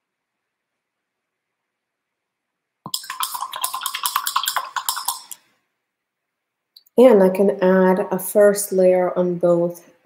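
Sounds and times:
paintbrush knocking in water cup: 0:02.9 - 0:05.4.

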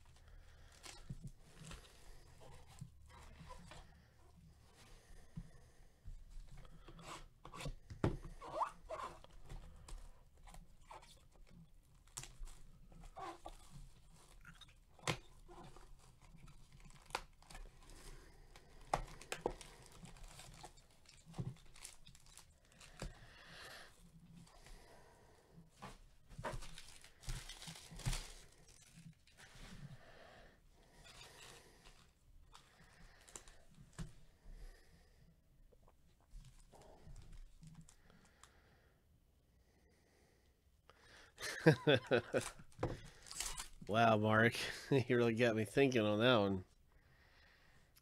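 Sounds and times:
packaging crinkling and tearing: 0:11.9 - 0:23.3, 0:26.5 - 0:29.4, 0:41.8 - 0:43.9.

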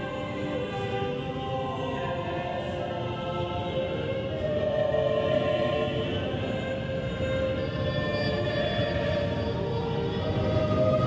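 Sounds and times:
slow church music chords: 0:00.0 - 0:11.0.

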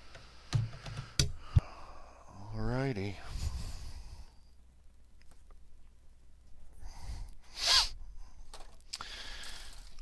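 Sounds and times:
sharp burst of breath: 0:06.9 - 0:08.0, 0:09.0 - 0:09.9
faint handling noise: 0:08.4 - 0:10.0.

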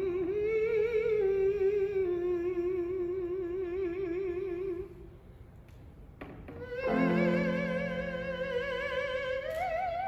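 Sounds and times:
countertenor singing wordless notes: 0:06.6 - 0:09.5.

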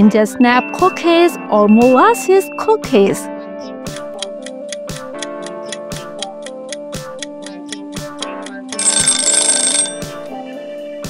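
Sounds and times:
light background music: 0:00.0 - 0:11.0
alarm bell ringing: 0:00.4 - 0:03.2, 0:08.8 - 0:10.3
clock ticking: 0:03.9 - 0:09.9.

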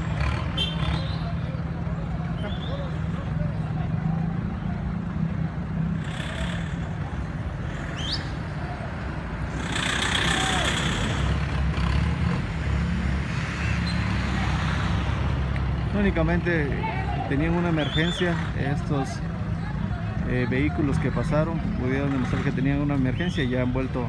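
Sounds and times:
traffic engines running: 0:00.0 - 0:24.0.

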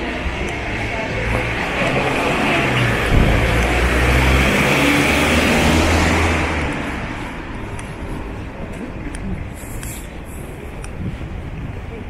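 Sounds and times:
vehicle passing: 0:00.7 - 0:08.5.

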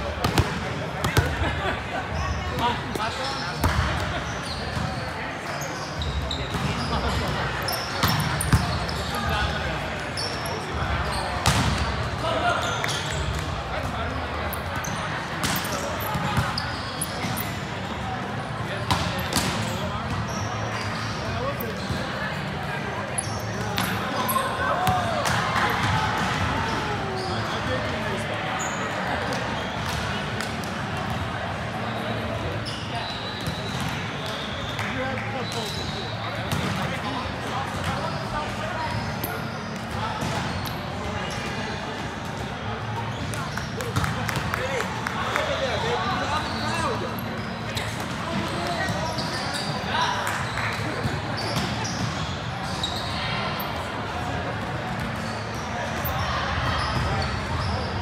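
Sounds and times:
volleyball hits echoing: 0:11.4 - 0:12.0.

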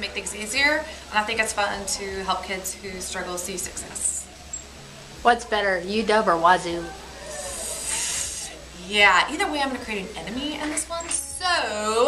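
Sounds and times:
woman hissing breath through teeth: 0:07.3 - 0:08.6.

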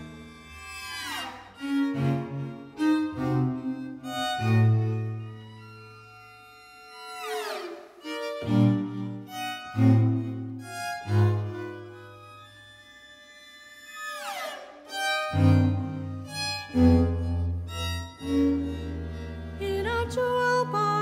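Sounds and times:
string quartet playing: 0:00.0 - 0:21.0.

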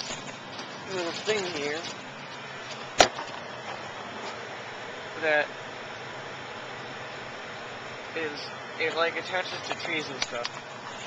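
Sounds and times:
plastic packaging handled: 0:00.0 - 0:04.4.

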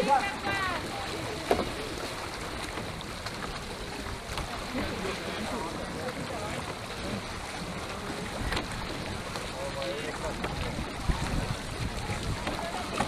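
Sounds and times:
water around boat: 0:00.0 - 0:13.0
wind: 0:00.0 - 0:13.0.

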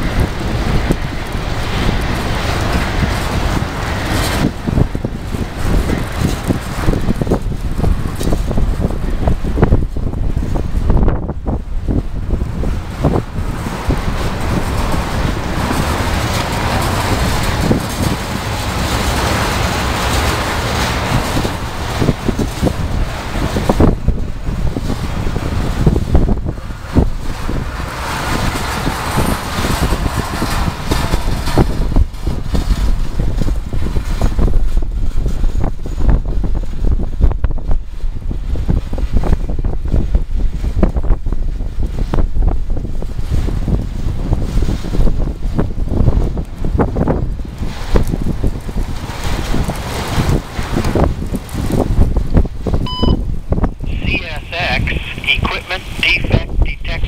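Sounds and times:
freight train cars rumbling: 0:00.0 - 0:57.0
wind buffeting microphone: 0:00.0 - 0:57.0.

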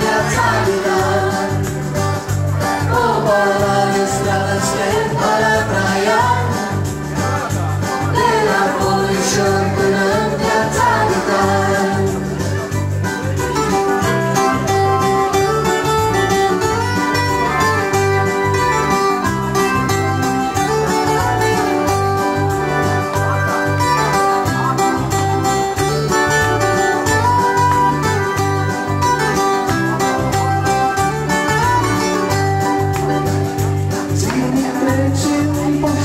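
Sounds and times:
acoustic guitar: 0:00.0 - 0:36.0
keyboard: 0:00.0 - 0:36.0.

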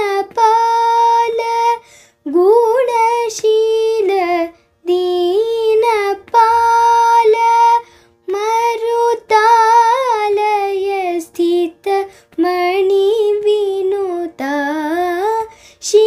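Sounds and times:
girl singing unaccompanied: 0:00.0 - 0:16.0.

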